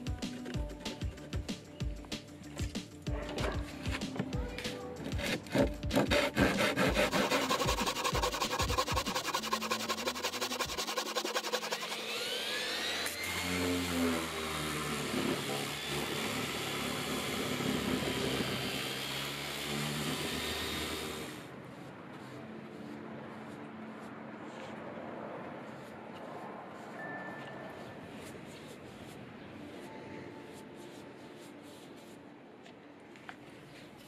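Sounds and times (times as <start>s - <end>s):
handsaw cutting wood: 5.0s - 21.5s
orbital sander whining: 6.7s - 21.4s.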